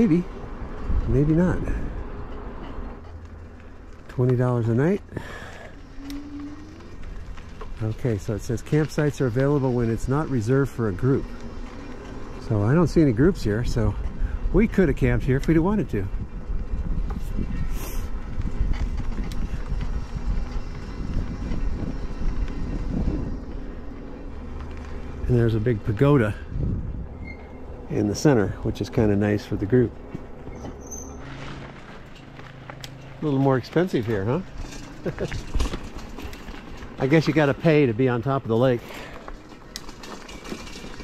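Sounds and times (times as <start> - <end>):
bike tyres rolling: 0.0 - 41.0
wind buffeting microphone: 12.5 - 30.6
wind on microphone: 16.1 - 23.9, 26.4 - 27.4.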